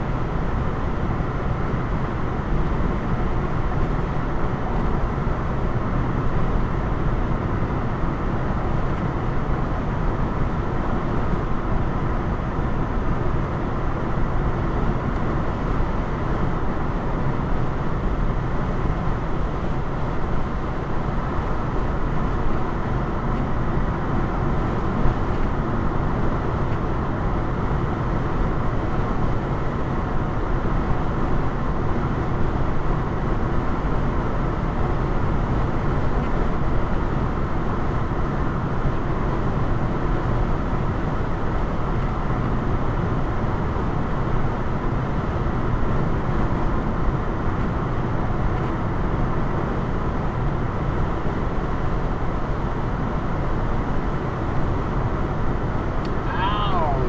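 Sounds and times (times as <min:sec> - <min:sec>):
car road and tyre noise: 0:00.0 - 0:57.0.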